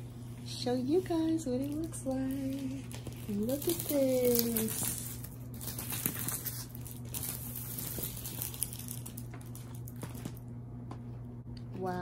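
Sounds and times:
steady low hum: 0.0s - 12.0s
plastic cover rustling and crinkling: 0.4s - 10.5s.

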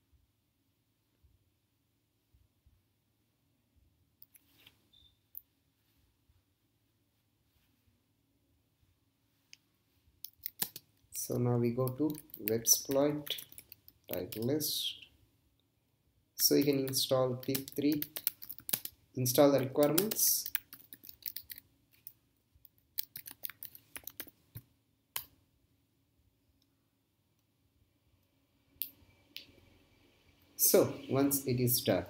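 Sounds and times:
computer keyboard key clicks: 10.3s - 10.8s, 16.6s - 18.9s, 19.8s - 21.6s, 23.0s - 24.3s.

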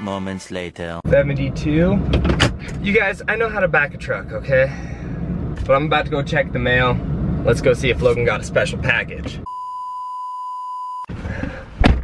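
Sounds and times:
high-pitched beep tone: 9.4s - 11.1s.

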